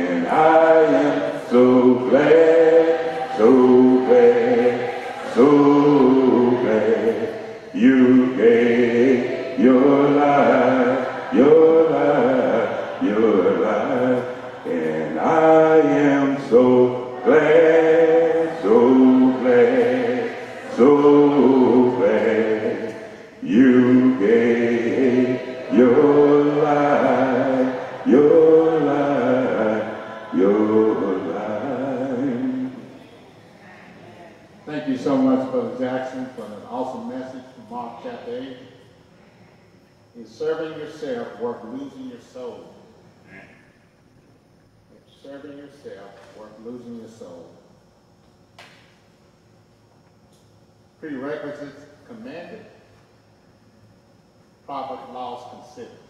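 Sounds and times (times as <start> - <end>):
congregation singing a hymn: 0.0 - 38.6.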